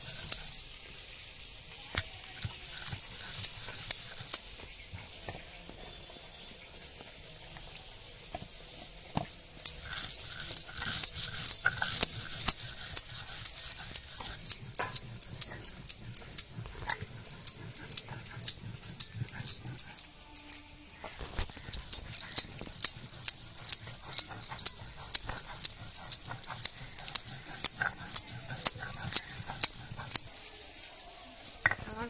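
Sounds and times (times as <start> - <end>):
stone roller grinding on slab: 2.2 - 20.1, 21.0 - 30.4.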